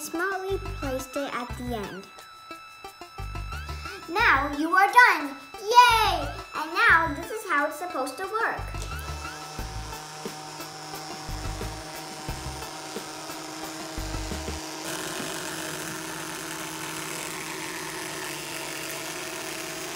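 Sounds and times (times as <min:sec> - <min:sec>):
vibration motors buzzing: 0:00.0 - 0:19.9.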